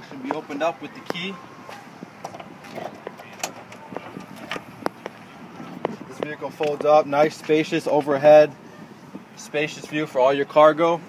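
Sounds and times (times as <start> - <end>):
key working trunk lock: 2.2 - 4.9.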